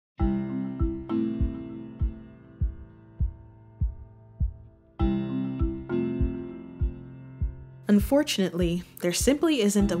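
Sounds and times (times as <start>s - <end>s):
keyboard chords: 0.2s - 10.0s
soft low beat: 0.8s - 10.0s.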